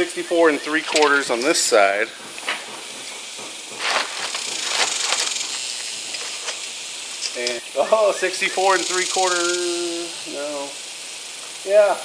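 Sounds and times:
steady hiss: 0.0s - 12.0s
tape measure rattling: 3.2s - 7.6s, 8.6s - 9.9s
tape measure scraping: 3.8s - 7.6s.

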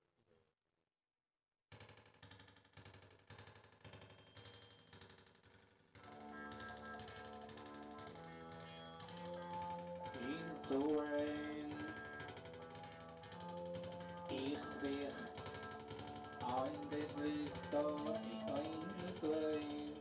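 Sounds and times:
person singing: 10.1s - 12.4s, 14.3s - 20.0s.

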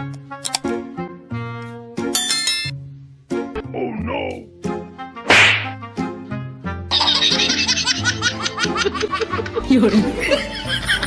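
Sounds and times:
background music: 0.0s - 11.0s
whip crack: 5.3s - 5.8s.

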